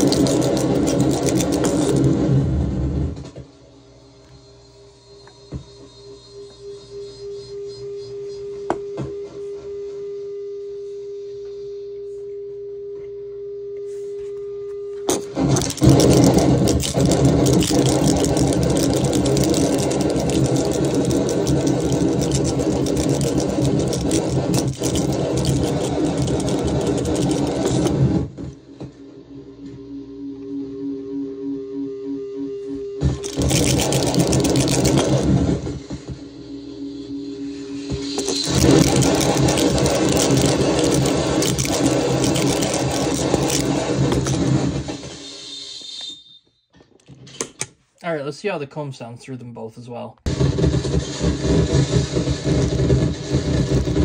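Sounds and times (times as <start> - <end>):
dense distorted noise: 0.0 - 3.3, 15.1 - 28.6, 33.0 - 45.2, 50.3 - 54.0
buzzing distortion drone: 15.1 - 28.4, 29.9 - 45.0, 50.3 - 54.0
pulsing tones: 29.8 - 45.1.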